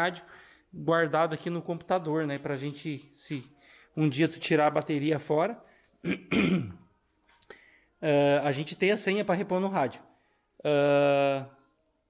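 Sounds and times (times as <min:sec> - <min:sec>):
man coughing: 0:06.0 - 0:06.8.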